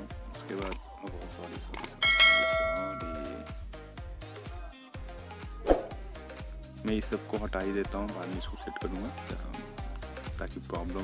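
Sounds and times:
bell chime: 2.0s - 3.6s.

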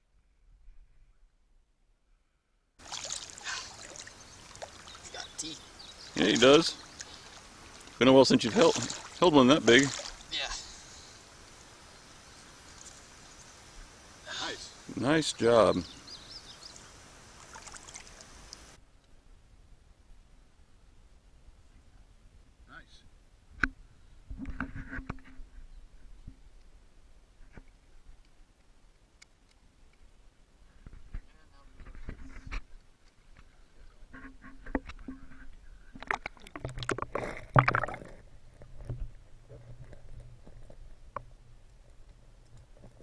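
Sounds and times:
river water trickling and splashing: 2.8s - 18.8s, 36.0s - 39.7s
small ticks: 12.4s - 13.6s.

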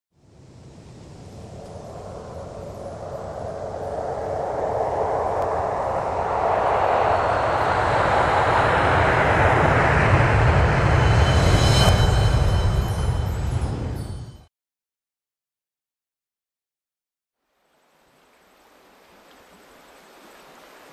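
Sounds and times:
rushing noise: 0.3s - 14.5s
deep rumble: 1.0s - 14.4s
faint high ringing tones: 10.6s - 14.5s.

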